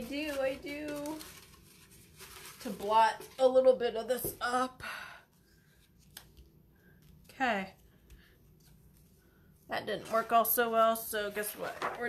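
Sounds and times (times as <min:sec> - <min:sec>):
paper handling: 0:00.0 - 0:03.7, 0:05.6 - 0:09.2, 0:09.9 - 0:12.0.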